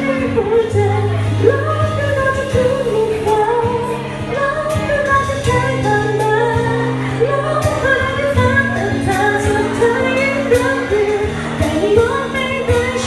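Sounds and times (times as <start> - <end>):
guitar: 0.0 - 13.0
woman singing pop ballad: 0.0 - 13.0.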